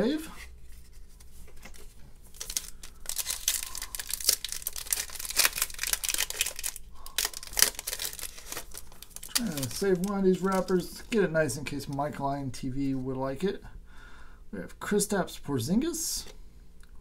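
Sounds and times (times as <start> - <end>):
foil wrapper crinkling and tearing: 1.6 - 11.2.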